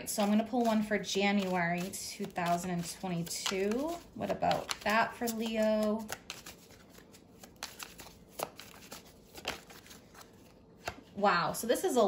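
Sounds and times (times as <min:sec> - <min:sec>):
cards being shuffled: 0:00.0 - 0:11.1.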